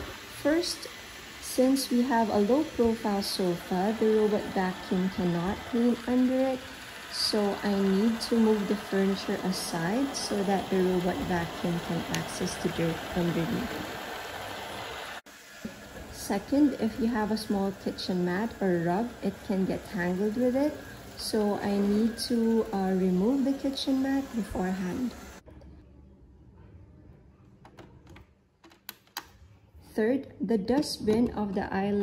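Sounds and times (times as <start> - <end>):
robot vacuum running: 0.0 - 25.4.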